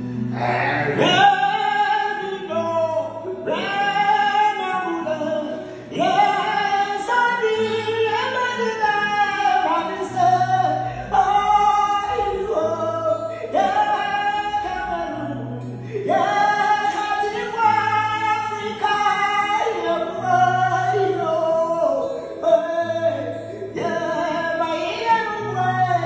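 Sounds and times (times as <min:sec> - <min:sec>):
acoustic guitar: 0:00.0 - 0:26.0
man singing wordless notes: 0:00.0 - 0:26.0.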